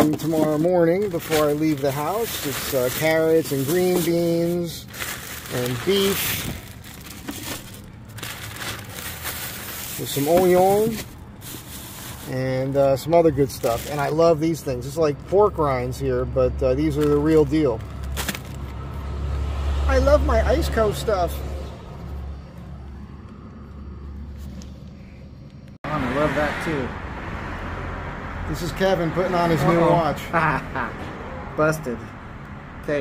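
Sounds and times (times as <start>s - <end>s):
plastic bags crinkling: 0.0s - 12.6s, 13.4s - 14.3s, 17.9s - 18.7s
low rumble of vehicle noise: 0.0s - 33.0s.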